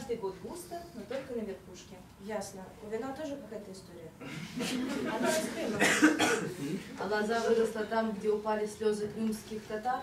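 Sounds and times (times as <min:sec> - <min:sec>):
person coughing: 0:05.7 - 0:06.8.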